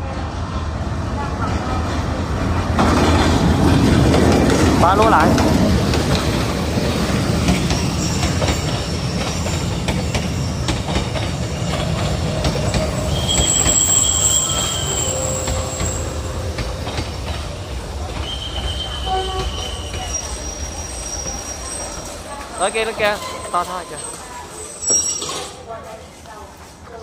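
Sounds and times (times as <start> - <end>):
train coaches rumbling: 0.0 - 27.0
train wheels squealing: 7.0 - 25.6.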